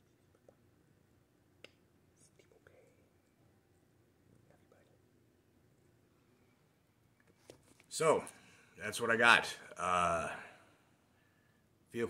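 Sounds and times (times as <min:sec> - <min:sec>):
faint whisper: 0:02.1 - 0:03.4, 0:04.4 - 0:05.2.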